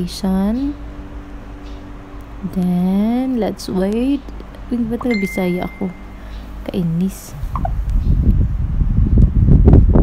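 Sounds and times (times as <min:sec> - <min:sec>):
wind buffeting microphone: 0:07.3 - 0:10.0.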